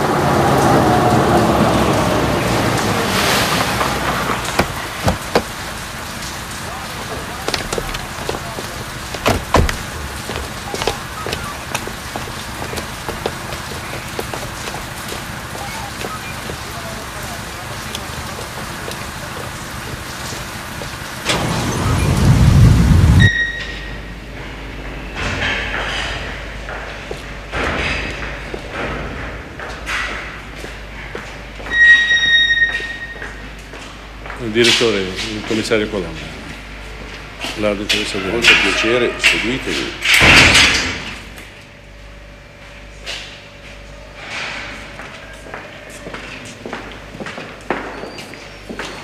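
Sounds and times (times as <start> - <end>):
heavy rain on a wet street: 0.0 - 23.6
scattered knocks: 4.1 - 5.8, 7.0 - 16.7
loud low rumble: 21.4 - 23.3.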